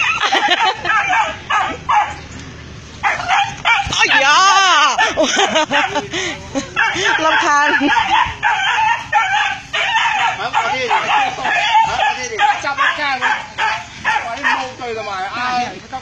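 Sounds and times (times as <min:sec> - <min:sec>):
dogs barking and yelping: 0:00.0 - 0:02.4, 0:03.0 - 0:14.9.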